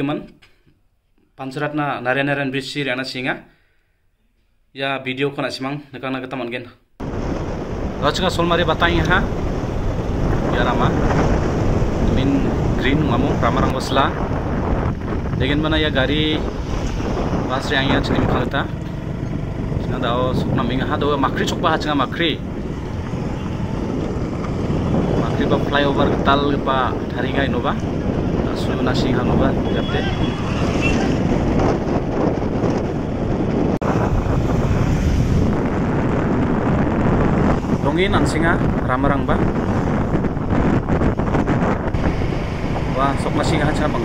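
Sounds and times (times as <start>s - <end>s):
vehicle road noise: 7.0s - 44.0s
wind on microphone: 7.0s - 44.0s.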